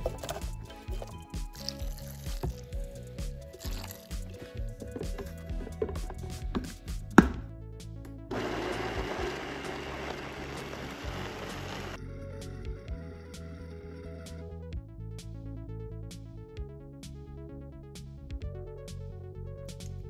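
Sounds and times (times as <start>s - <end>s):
blender running: 8.3s - 12.0s.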